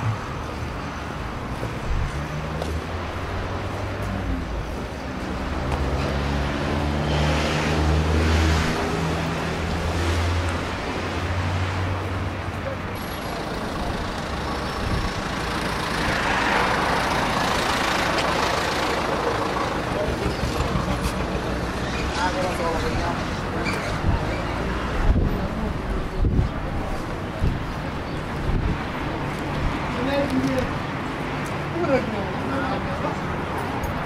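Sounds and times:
passing traffic rush: 0.0s - 34.0s
vehicle engine humming: 0.0s - 34.0s.

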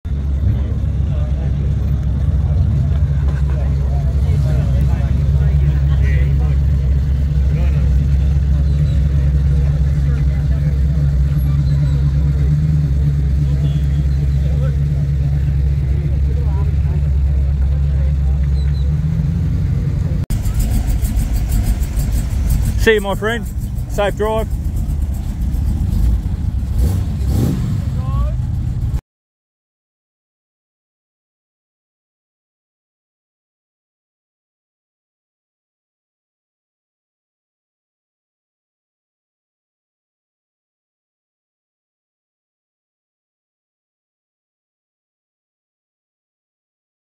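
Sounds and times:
car engine idling: 0.1s - 29.0s
faint voices: 0.2s - 25.4s.

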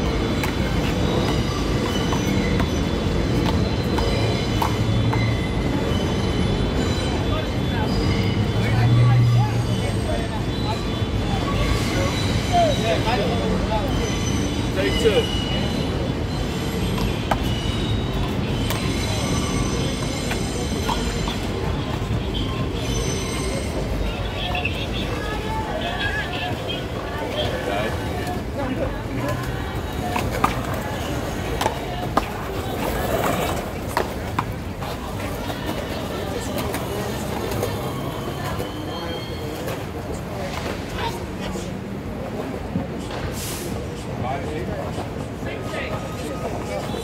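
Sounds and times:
train wheel squeal: 0.0s - 42.7s, 43.3s - 47.0s
train rumbling past: 0.0s - 47.0s.

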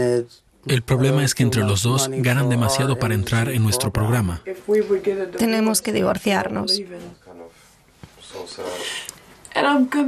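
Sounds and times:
person speaking: 0.6s - 4.5s.

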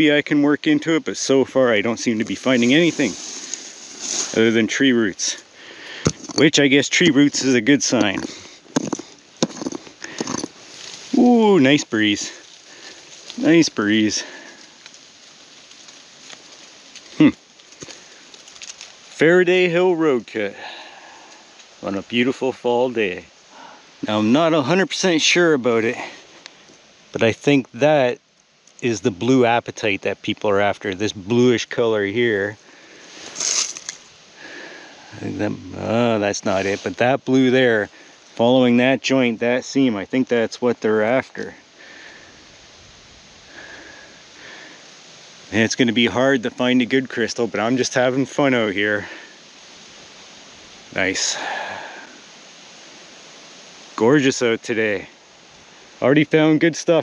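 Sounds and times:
quiet outdoor background: 0.0s - 57.0s
digging scraping and rustling: 1.4s - 19.3s, 33.0s - 34.1s, 35.4s - 37.5s
breath through nose: 5.5s - 6.2s, 41.8s - 42.5s, 51.4s - 52.2s
rock pick knocking on stone: 6.0s - 6.4s, 8.0s - 10.5s.

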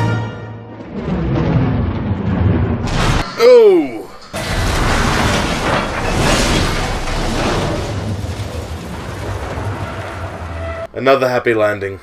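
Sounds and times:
loud noisy rumble: 0.6s - 10.9s.

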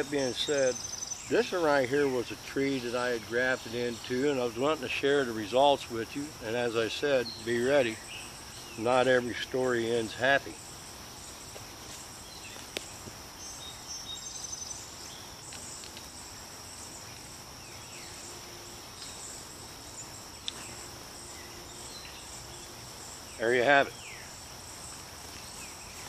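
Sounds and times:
high-pitched insect chorus: 0.0s - 26.0s
faint rustling of cloth wrap: 7.4s - 26.0s.

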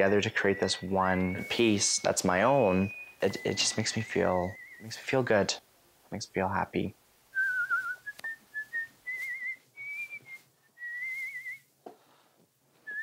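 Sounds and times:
person whistling a slow tune: 0.4s - 5.0s, 7.4s - 11.7s.

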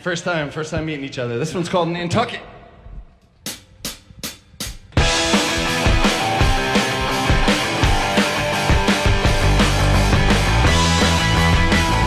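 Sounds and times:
rock band playing: 5.0s - 12.0s.

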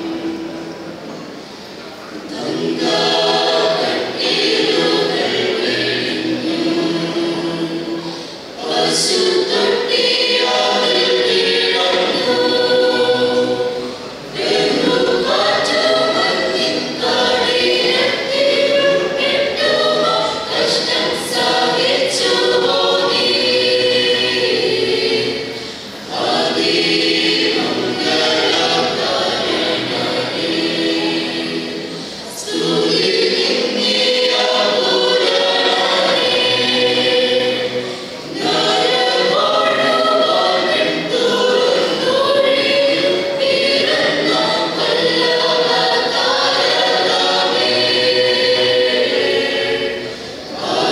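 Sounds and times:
church choir singing: 0.0s - 50.9s.

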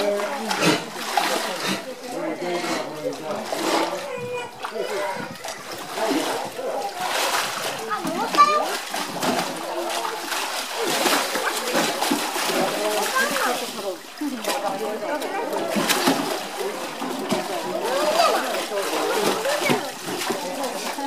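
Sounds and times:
people chattering: 0.0s - 21.0s
water splashing and sloshing: 0.0s - 21.0s.

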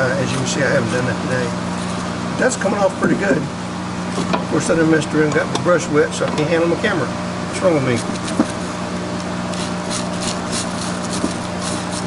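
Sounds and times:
steady low hum: 0.0s - 12.0s
wire brush scratching metal: 1.6s - 2.2s, 7.8s - 12.0s.

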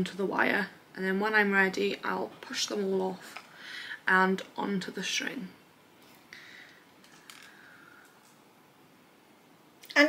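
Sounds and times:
faint click of plastic beads: 6.7s - 8.4s.

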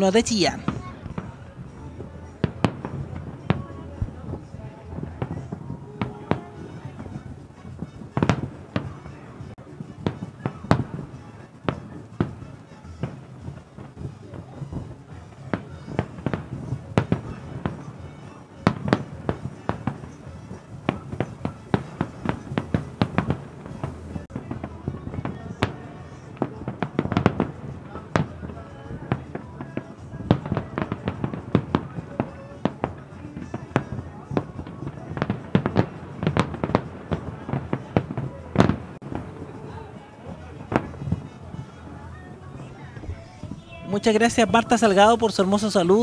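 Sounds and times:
fireworks bursting and crackling: 0.0s - 46.0s.

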